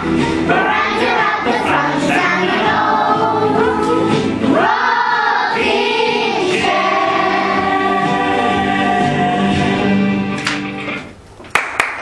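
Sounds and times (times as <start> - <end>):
girls singing together: 0.0 - 9.9
instrumental backing music: 0.0 - 11.4.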